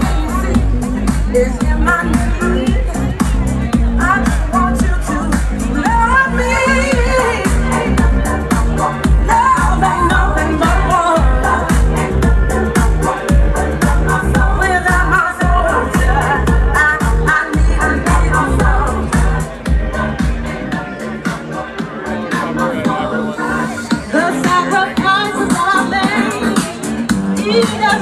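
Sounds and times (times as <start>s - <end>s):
dance music with heavy bass: 0.0s - 28.0s
person singing: 0.0s - 28.0s.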